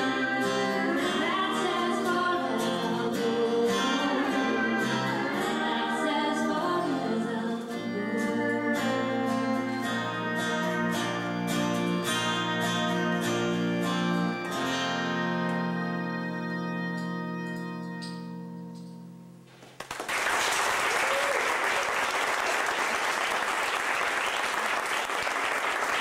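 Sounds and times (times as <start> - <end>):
woman singing: 0.0 - 10.8
acoustic guitar: 0.0 - 19.8.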